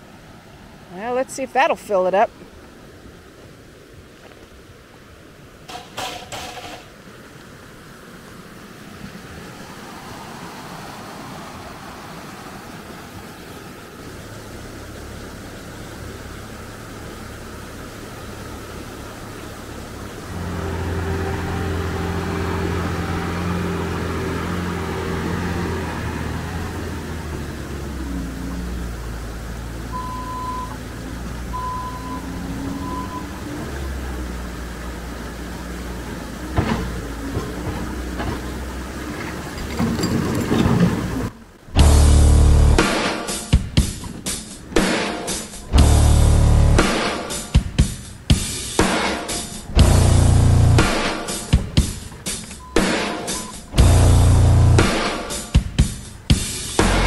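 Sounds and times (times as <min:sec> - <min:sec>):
creek rushing: 0:00.0 - 0:57.0
knocks: 0:05.7 - 0:06.9
diesel engine of track loader: 0:14.6 - 0:42.9, 0:45.7 - 0:47.3, 0:49.5 - 0:55.4
backup alarm beeps: 0:29.9 - 0:30.8, 0:31.5 - 0:33.3, 0:52.6 - 0:53.8.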